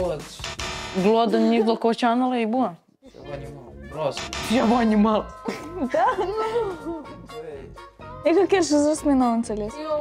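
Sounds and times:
background music: 0.0s - 2.0s, 3.1s - 10.0s.

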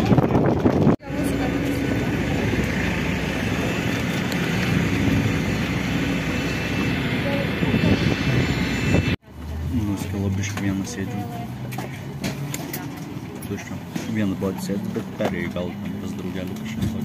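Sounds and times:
jet aircraft rushing hum: 0.0s - 9.2s.

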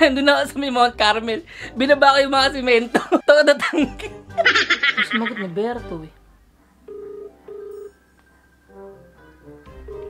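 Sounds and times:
telephone ringback tone: 6.9s - 8.0s, 9.8s - 10.0s.

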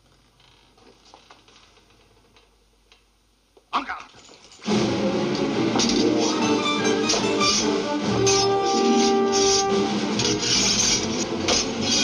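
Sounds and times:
lively film score music: 4.6s - 12.0s.

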